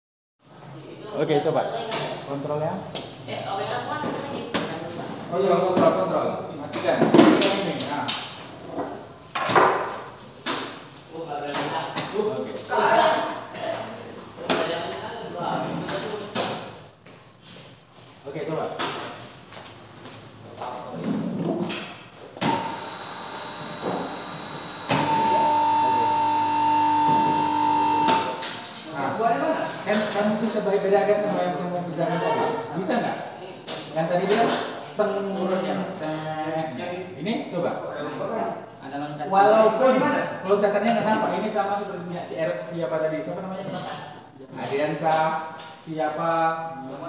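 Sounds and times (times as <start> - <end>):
motor switch click: 22.4 - 28.4
electric motor hum and whine: 22.4 - 28.5.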